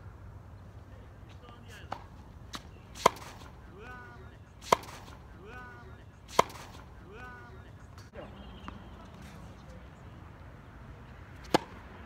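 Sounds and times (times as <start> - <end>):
tennis ball hit by racket: 1.8 - 7.4, 11.4 - 11.9.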